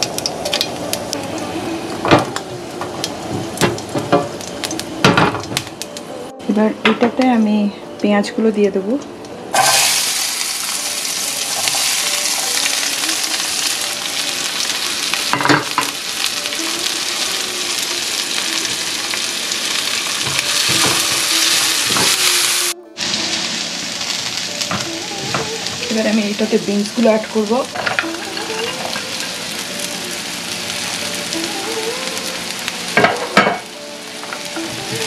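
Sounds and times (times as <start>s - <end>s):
onions sizzling in hot oil: 0.0s - 6.0s, 9.5s - 35.0s.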